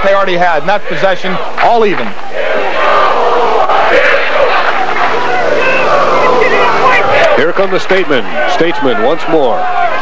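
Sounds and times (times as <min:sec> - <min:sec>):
crowd cheering and shouting: 0:00.1 - 0:10.0.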